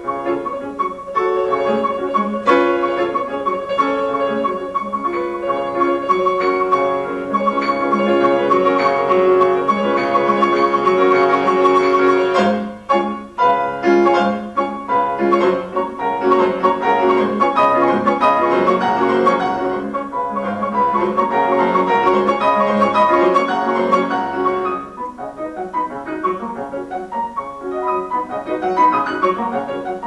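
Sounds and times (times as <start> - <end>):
solo grand piano classical passage: 0.0 - 30.0.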